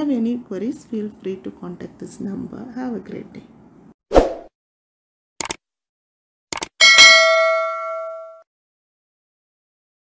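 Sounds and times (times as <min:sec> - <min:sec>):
cursor clicks: 0:05.4 - 0:05.6, 0:06.5 - 0:06.8
bright bell ding: 0:06.8 - 0:08.4.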